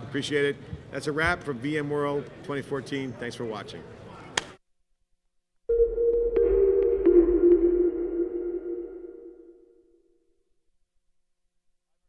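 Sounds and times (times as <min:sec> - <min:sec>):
sustained synthesized tone: 0:05.7 - 0:10.0.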